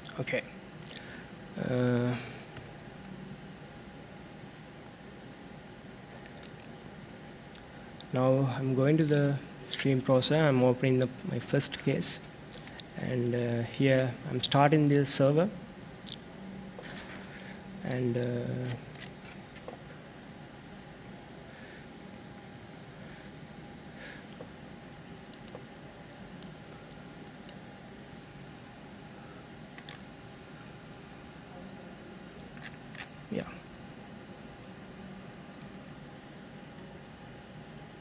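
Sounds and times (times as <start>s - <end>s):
steady low hum: 0.0s - 38.0s
laptop keys clicking: 22.0s - 23.6s.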